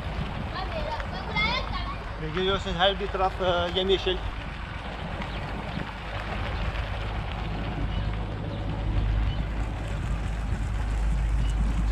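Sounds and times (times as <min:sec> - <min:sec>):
wind rushing over microphone: 0:00.0 - 0:11.9
motorcycle engine running: 0:05.0 - 0:11.9.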